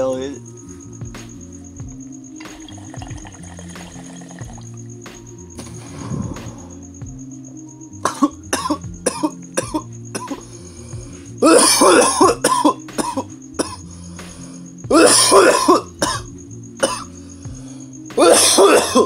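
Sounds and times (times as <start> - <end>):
man coughing hard: 8.0 - 10.4, 11.4 - 13.8, 14.9 - 17.1, 18.2 - 19.0.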